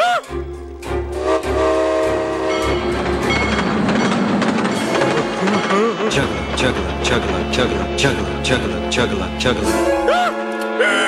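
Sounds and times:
background music: 0.0s - 11.0s
train rumble: 0.8s - 10.0s
train horn blast: 1.1s - 3.4s
train wheels clattering: 2.0s - 9.6s.

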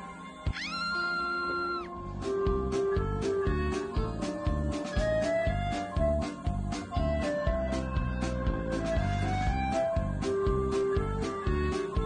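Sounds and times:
background music: 0.0s - 12.0s
cat meowing: 0.5s - 1.9s.

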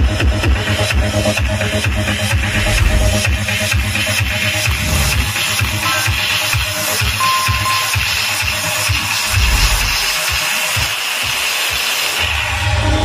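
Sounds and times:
continuous deep bass: 0.0s - 11.4s
loud electronic dance music: 0.0s - 13.0s.

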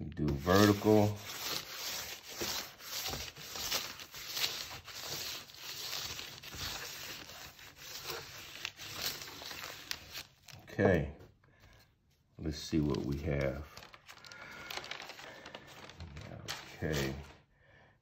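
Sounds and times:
wooden barren rubbing on paper: 0.3s - 10.3s.

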